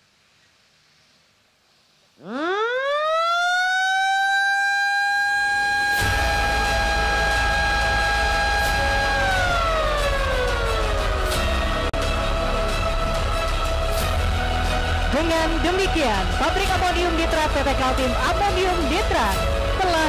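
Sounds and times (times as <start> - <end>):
siren wailing: 2.2 - 11.8
music: 5.8 - 20.0.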